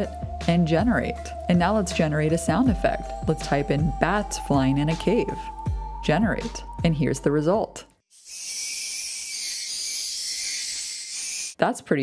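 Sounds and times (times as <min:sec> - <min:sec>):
high-pitched hiss of bats flying: 0:08.1 - 0:11.6.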